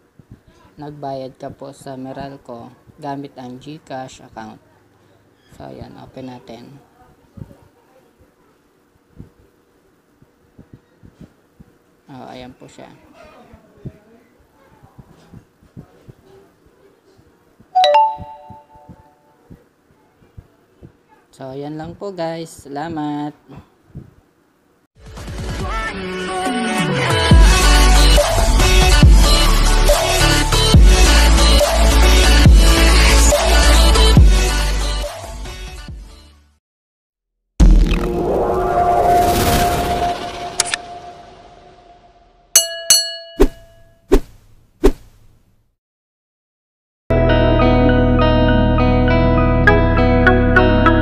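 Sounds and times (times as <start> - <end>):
electronic doorbell chime: 17.8 - 19.1
brief chime: 17.8 - 19.2, 42.6 - 44.0
fading tone: 37.6 - 42.7.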